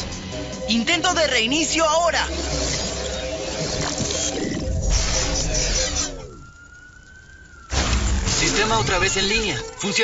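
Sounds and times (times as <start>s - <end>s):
electronic hum and buzz winding down: 1.8s - 10.0s
thin rising electronic whine: 2.3s - 9.7s.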